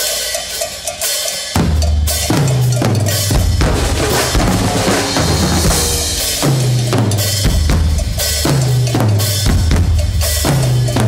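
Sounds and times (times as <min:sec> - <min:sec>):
percussion ensemble drumming: 0:00.0 - 0:11.0.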